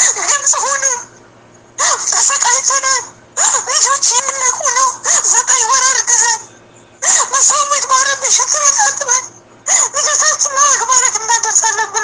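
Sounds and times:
high-pitched buzzy voice: 1.8 - 12.0.

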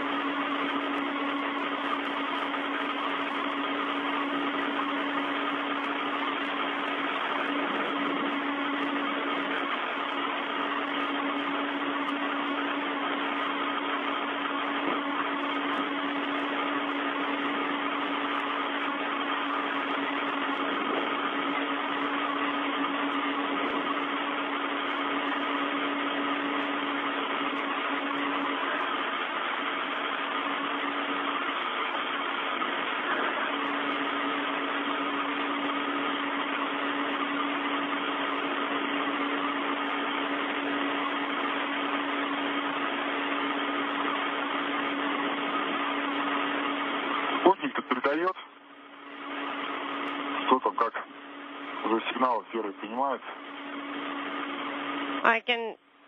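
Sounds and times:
radio channel hiss: 0.0 - 55.8
low hum: 0.0 - 56.0.

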